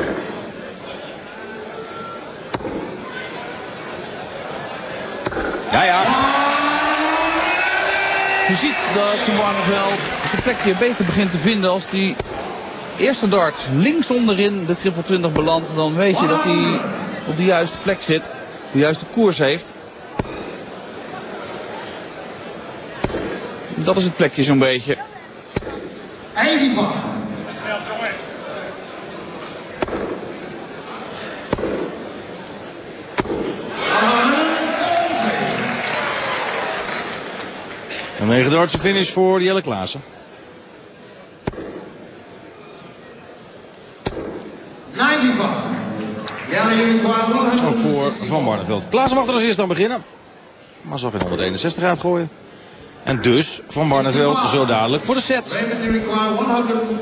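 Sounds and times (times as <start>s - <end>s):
crowd: 0.0s - 57.0s
crowd cheering: 5.6s - 12.6s, 33.5s - 39.0s
man calling out: 16.1s - 17.0s
man bellowing announcement: 16.1s - 17.1s.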